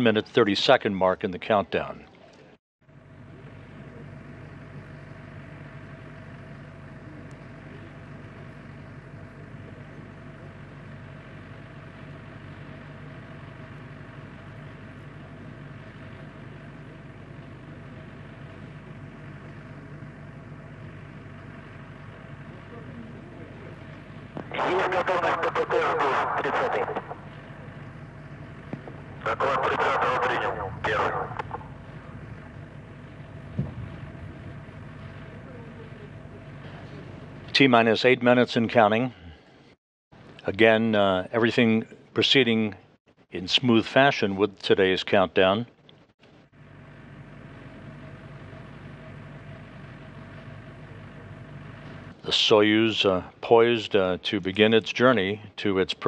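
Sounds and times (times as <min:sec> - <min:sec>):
steady low hum: 0:00.0 - 0:56.0
loud bursts of voice: 0:24.5 - 0:27.3, 0:29.2 - 0:31.7.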